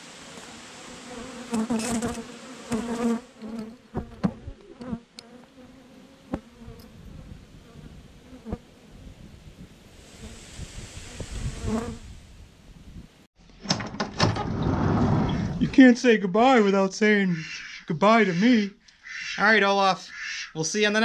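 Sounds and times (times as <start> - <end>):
bees buzzing: 0.3 - 9.0
bee droning close past: 0.3 - 9.1, 11.0 - 12.2.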